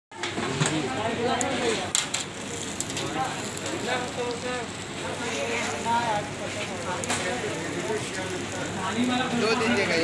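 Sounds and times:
people talking: 0:00.2 - 0:10.0
steady hiss: 0:02.4 - 0:10.0.

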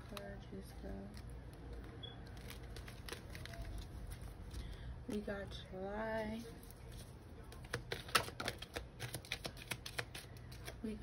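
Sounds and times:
cards being shuffled: 0:01.2 - 0:04.5, 0:06.5 - 0:10.9.

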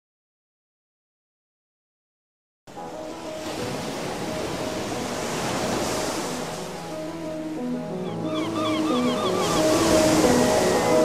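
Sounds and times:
ocean surf on shore: 0:02.7 - 0:11.0
soft electronic music: 0:02.7 - 0:11.0.

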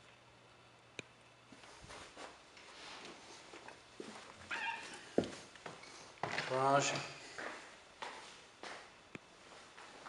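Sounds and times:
door squeak: 0:04.5 - 0:05.0.

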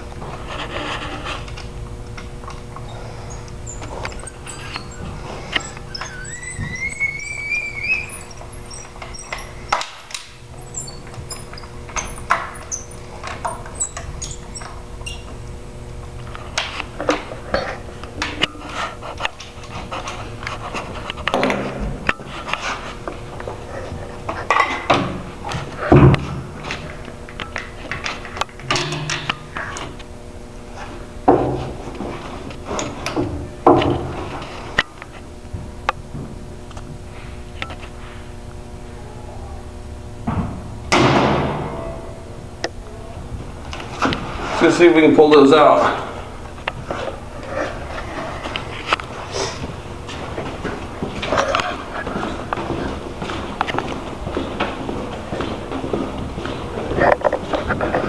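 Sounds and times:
short rising squeak: 0:02.8 - 0:15.3.

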